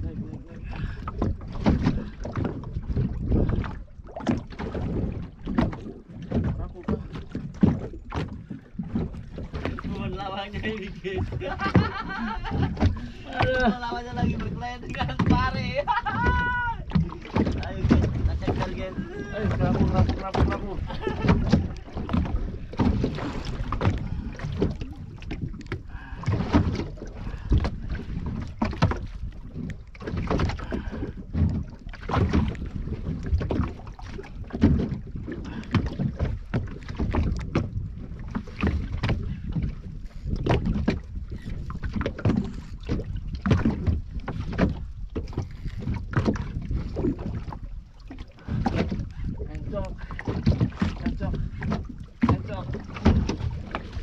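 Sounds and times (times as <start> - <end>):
low rumbling: 0.0 - 54.0
water slapping against boat hull: 0.0 - 54.0
knocks on boat: 1.0 - 10.3, 11.0 - 54.0.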